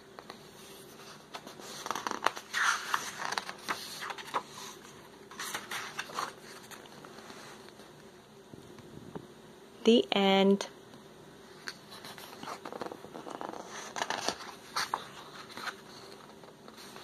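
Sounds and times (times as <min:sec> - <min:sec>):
paper page rustling: 0:00.6 - 0:07.7, 0:11.6 - 0:17.0.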